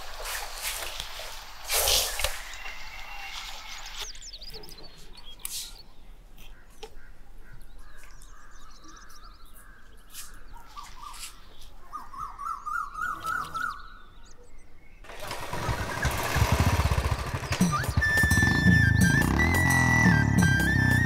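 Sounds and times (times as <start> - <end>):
birds chirping faintly: 0.0 - 21.0
motorcycle engine starting and running: 15.0 - 21.0.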